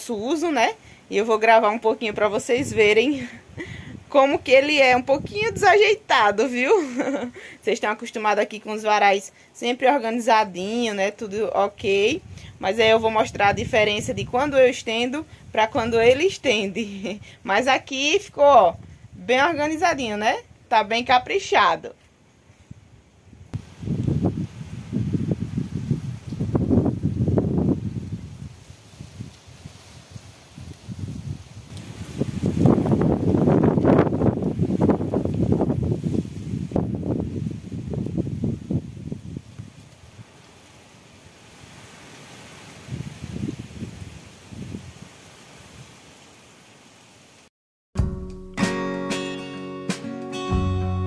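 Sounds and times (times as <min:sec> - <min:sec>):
wind buffeting microphone: 0:02.0 - 0:06.4, 0:11.4 - 0:20.7, 0:22.6 - 0:40.3, 0:42.8 - 0:45.2.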